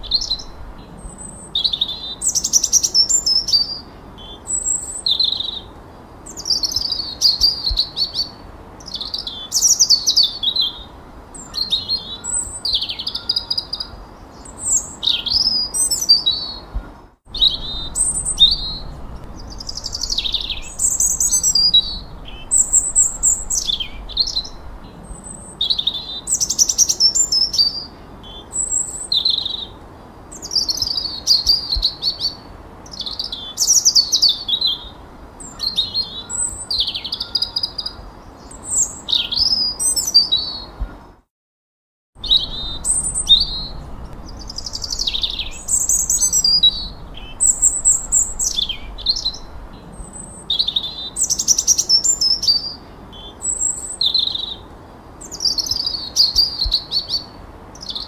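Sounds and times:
songbirds singing: 0:00.0 - 0:41.2, 0:42.2 - 0:58.0.

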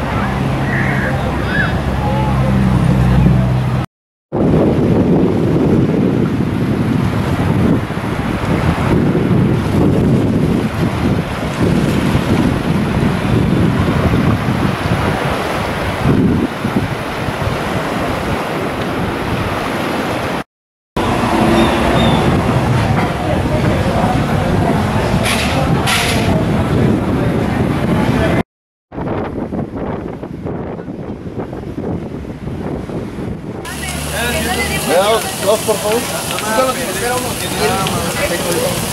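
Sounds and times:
wind buffeting microphone: 0:00.0 - 0:20.4, 0:21.0 - 0:38.9
small waves lapping: 0:33.7 - 0:38.9.

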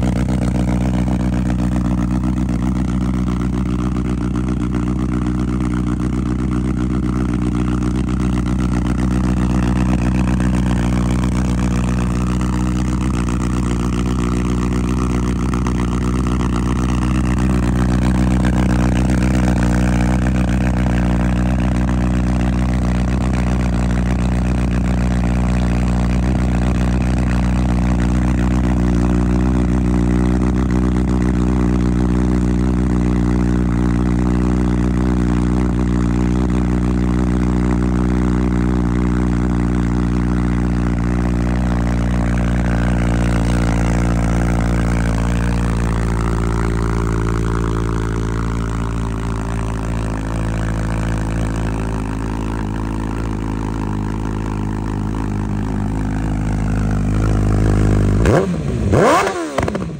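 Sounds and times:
motorcycle engine idling: 0:00.0 - 0:59.9.

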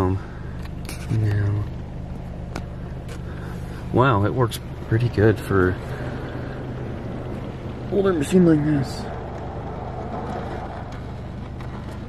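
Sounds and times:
car wash low hum: 0:00.0 - 0:12.0.

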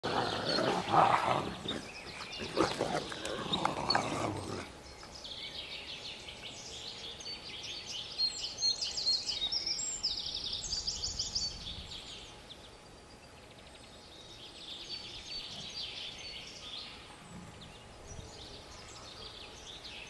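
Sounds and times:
wolves growling: 0:00.0 - 0:04.8.

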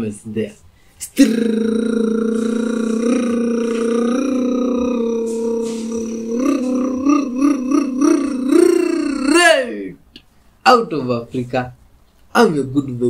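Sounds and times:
man's long vocal call: 0:01.0 - 0:10.0.

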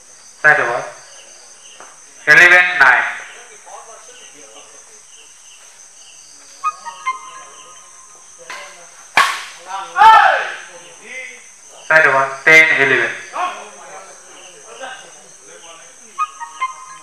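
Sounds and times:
high-pitched drone: 0:06.6 - 0:08.2, 0:16.1 - 0:17.0
racket hitting shuttlecock: 0:08.5 - 0:09.7
player shouting: 0:09.6 - 0:10.7.

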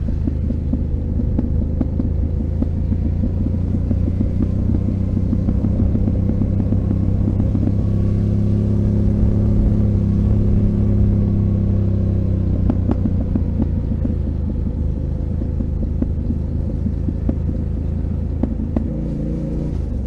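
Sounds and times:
motorcycle engine low rumble: 0:00.0 - 0:20.0.

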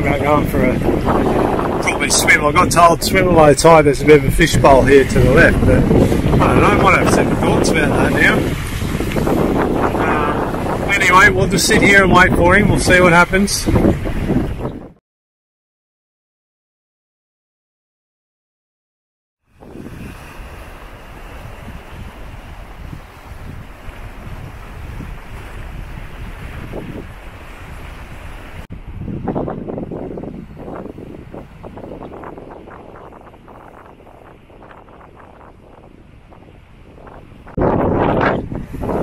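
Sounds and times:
surf washing against rocks: 0:00.0 - 0:14.7, 0:19.5 - 0:39.0
wind on microphone: 0:00.0 - 0:15.0, 0:19.5 - 0:39.0.

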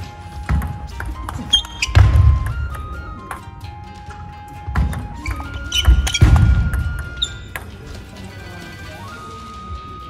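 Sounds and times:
background music held notes: 0:00.0 - 0:10.0
table tennis ball clicks: 0:00.5 - 0:03.4, 0:04.8 - 0:07.9.

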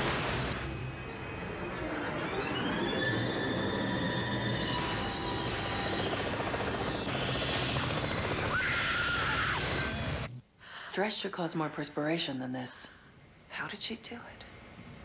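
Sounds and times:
dramatic music: 0:00.0 - 0:08.5
helicopter whine: 0:00.0 - 0:10.3.

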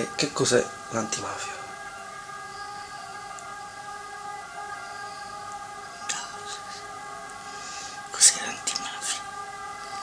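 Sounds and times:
steady hum of held tones: 0:00.0 - 0:10.0.

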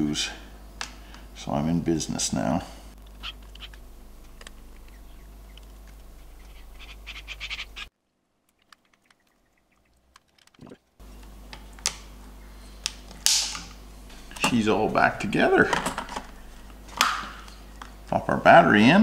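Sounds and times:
steady low hum: 0:00.0 - 0:07.9, 0:10.7 - 0:19.0.

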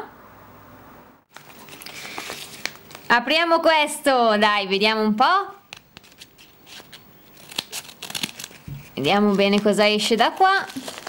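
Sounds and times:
paper rustling: 0:01.3 - 0:03.1, 0:05.7 - 0:11.0.

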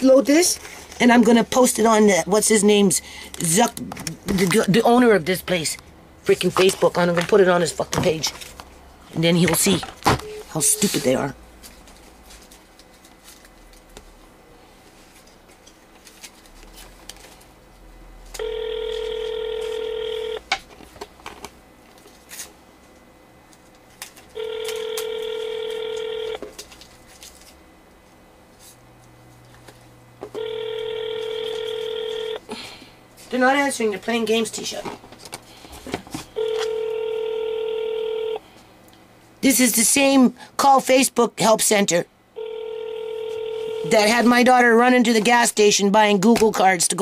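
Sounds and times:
telephone ringback tone: 0:18.4 - 0:20.4, 0:24.4 - 0:26.4, 0:30.3 - 0:32.4, 0:36.4 - 0:38.4, 0:42.4 - 0:44.1.

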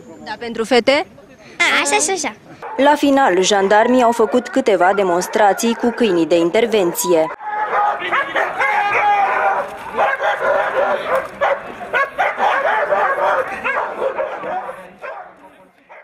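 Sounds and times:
dogs barking excitedly: 0:02.6 - 0:16.0.

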